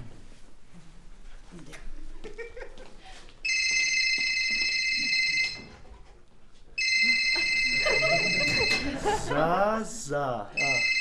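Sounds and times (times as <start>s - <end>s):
mobile phone ringing: 3.4s - 5.8s, 6.8s - 9.2s, 10.6s - 11.0s.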